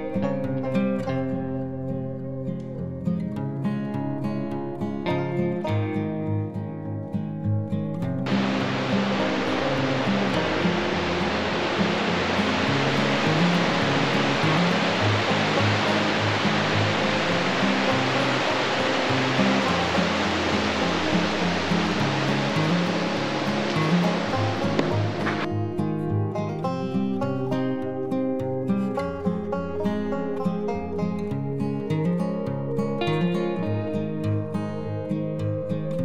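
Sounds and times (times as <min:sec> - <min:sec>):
acoustic guitar music: 0:00.0 - 0:36.0
water rushing over rocks: 0:08.3 - 0:25.5.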